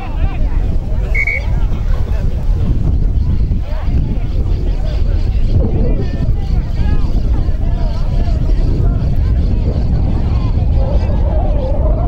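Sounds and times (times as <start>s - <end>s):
distant shouts and calls: 0.0s - 2.1s
wind buffeting microphone: 0.0s - 12.0s.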